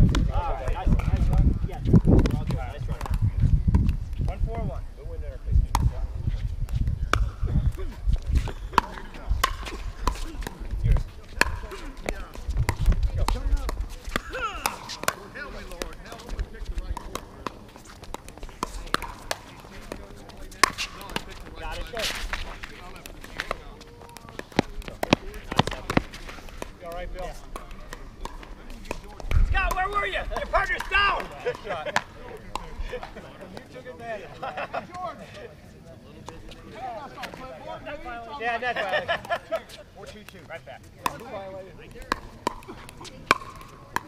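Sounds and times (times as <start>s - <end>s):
paddles hitting plastic ball: 0.0s - 4.2s, 6.6s - 33.7s, 41.0s - 44.0s.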